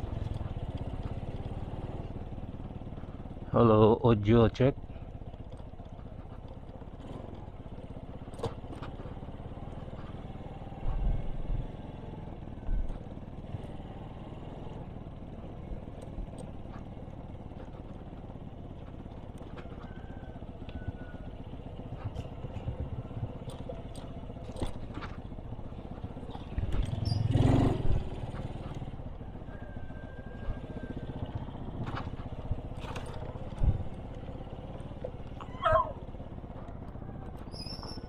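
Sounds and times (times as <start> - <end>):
bike clicks and rattles: 0.0 - 3.5, 4.8 - 11.6, 12.3 - 29.5, 30.4 - 38.0
muffled motorcycle engine: 0.0 - 38.0.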